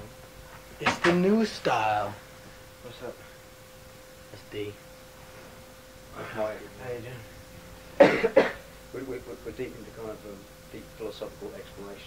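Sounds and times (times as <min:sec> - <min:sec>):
person coughing: 0:08.0 - 0:08.7.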